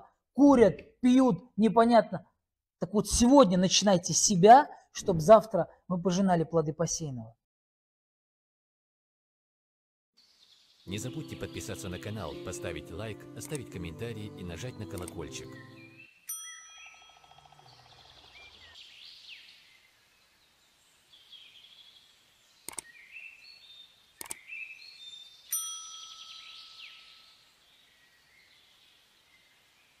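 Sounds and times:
sharp clicks: 0:15.0 - 0:15.2, 0:22.7 - 0:22.9, 0:24.2 - 0:24.5
bright chime: 0:16.3 - 0:17.9, 0:25.5 - 0:26.9.

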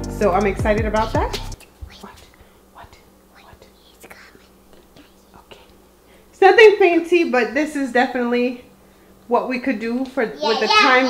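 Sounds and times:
child whispering: 0:01.3 - 0:05.8.

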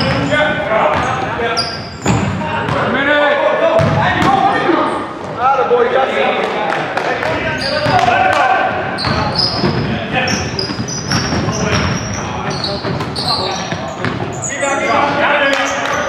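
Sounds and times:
sneaker squeaks: 0:00.0 - 0:02.9, 0:07.5 - 0:08.1, 0:08.8 - 0:16.0
players calling out: 0:00.0 - 0:16.0
basketball bouncing on hardwood: 0:09.0 - 0:14.2.

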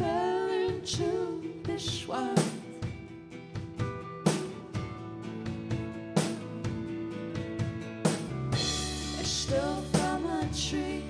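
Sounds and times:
person singing: 0:00.0 - 0:02.8, 0:09.0 - 0:11.0
live band playing: 0:03.5 - 0:10.2.

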